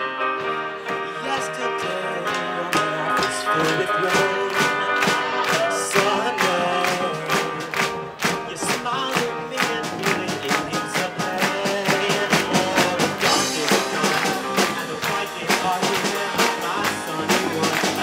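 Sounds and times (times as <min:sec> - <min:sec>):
live rock band playing: 0:00.0 - 0:18.0.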